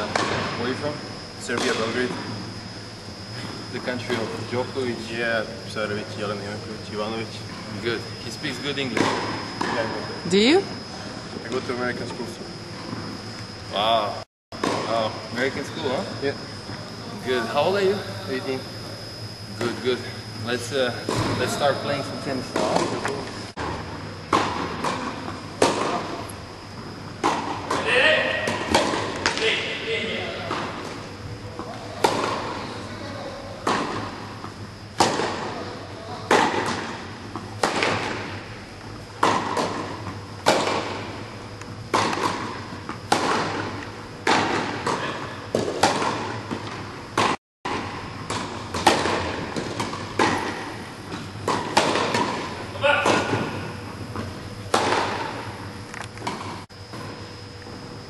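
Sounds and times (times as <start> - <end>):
tennis balls struck by rackets: 22.5 - 26.0, 35.0 - 35.6, 36.2 - 38.5, 39.1 - 41.1, 41.9 - 55.6
tennis balls bouncing: 41.9 - 55.6.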